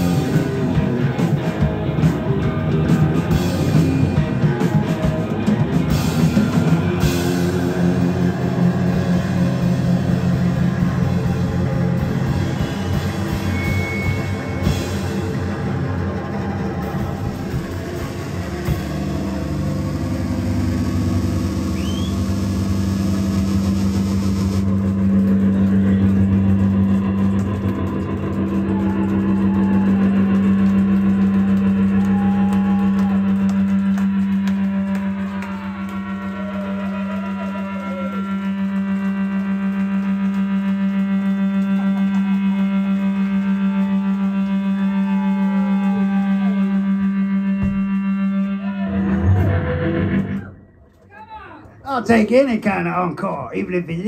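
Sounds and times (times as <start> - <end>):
drums and cymbals crashing: 0.0 - 35.3
sustained amplified drone: 0.0 - 51.1.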